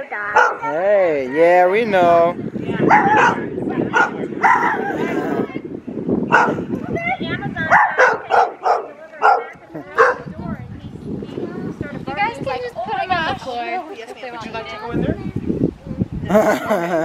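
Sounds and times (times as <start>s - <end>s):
dog barking and yipping: 0.4s - 0.7s, 2.9s - 3.4s, 4.0s - 4.9s, 6.3s - 6.6s, 7.7s - 10.3s.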